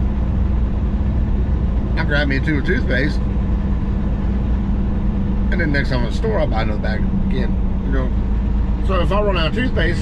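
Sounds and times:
diesel truck engine drone: 0.0s - 10.0s
road noise: 0.0s - 10.0s.

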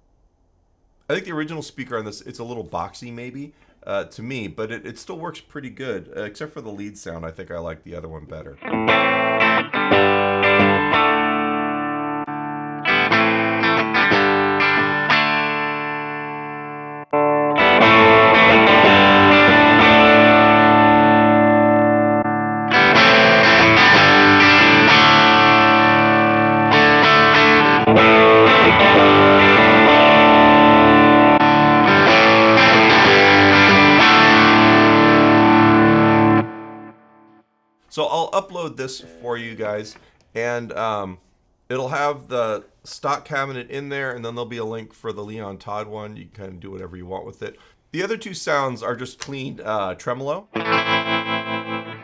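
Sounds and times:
person speaking: 1.1s - 8.6s, 37.9s - 50.6s
distorted electric guitar: 8.6s - 37.4s, 38.6s - 40.1s, 50.5s - 52.0s
electric guitar picked notes: 8.6s - 37.4s, 38.5s - 40.1s, 50.5s - 52.0s.

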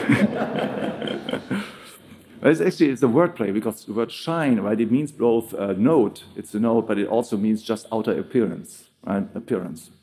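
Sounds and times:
audience laughter: 0.0s - 1.8s.

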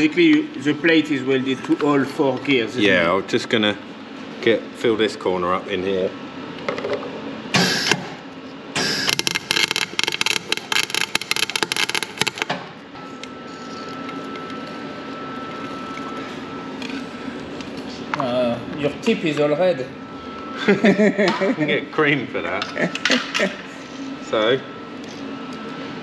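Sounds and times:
steady hum: 0.0s - 26.0s
welder arc crackling: 8.8s - 12.5s
faint thin whine: 13.0s - 20.5s.

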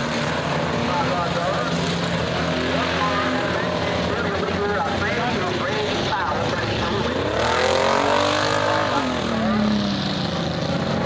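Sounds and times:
race car engine passing: 0.0s - 11.0s
running race car engines: 0.0s - 11.0s.

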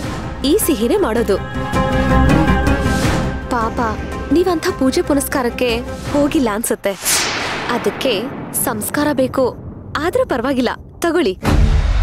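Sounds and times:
woman's voice: 0.4s - 1.6s, 3.4s - 11.5s
deep boom with low rumble: 7.0s - 12.0s.

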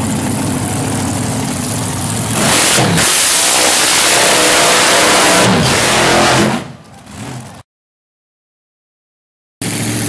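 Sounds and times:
dragster engine revving: 0.0s - 7.6s.

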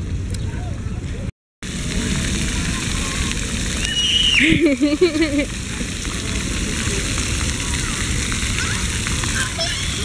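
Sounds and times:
fountain jets spraying on pavement: 1.6s - 10.0s.

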